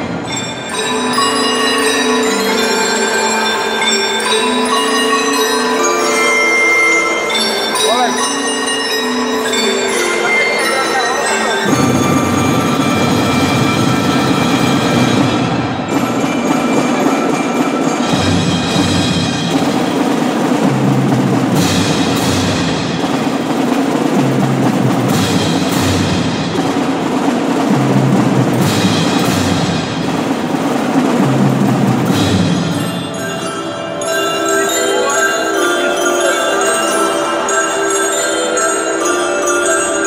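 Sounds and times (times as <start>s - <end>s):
drums: 0.0s - 40.0s
marimba and mallet instruments: 0.0s - 40.0s
sharp accented percussion hits: 0.0s - 40.0s.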